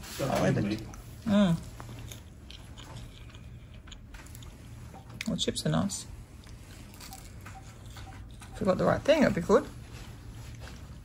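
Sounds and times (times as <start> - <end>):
person chewing crunchy food: 0.9 - 5.3, 6.4 - 8.6.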